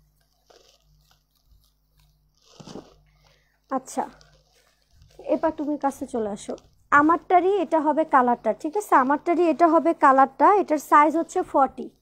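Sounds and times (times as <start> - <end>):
fabric rustling: 0.0 - 12.0.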